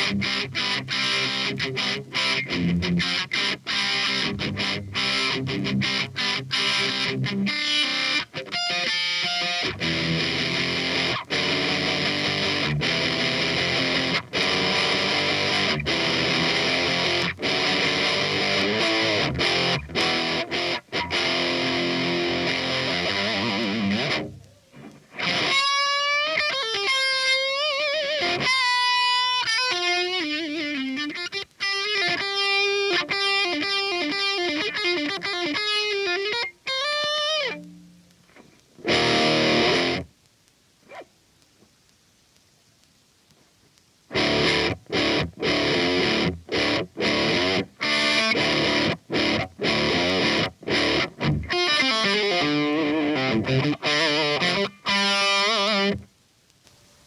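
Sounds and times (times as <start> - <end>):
distorted electric guitar chords: 0.0 - 40.2, 44.1 - 56.1
electric guitar lead lines: 0.0 - 40.2, 44.0 - 56.2.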